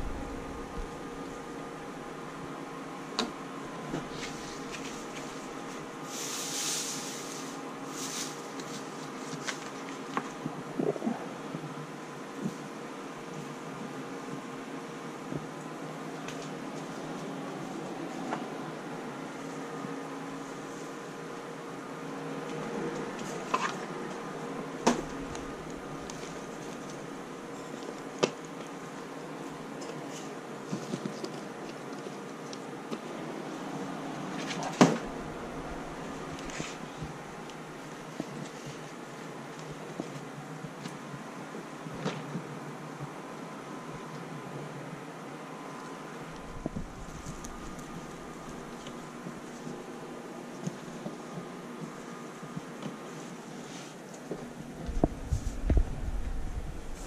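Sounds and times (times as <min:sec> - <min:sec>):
room hum: 0:00.0 - 0:57.0.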